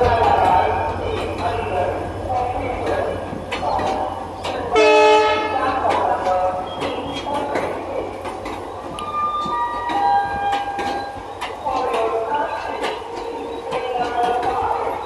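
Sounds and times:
train wheels clattering over joints: 0:00.0 - 0:15.0
train horn blast: 0:04.8 - 0:05.7.

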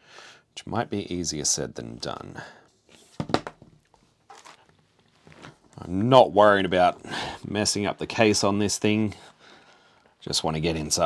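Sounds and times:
plastic case knocks and clicks: 0:03.2 - 0:03.7.

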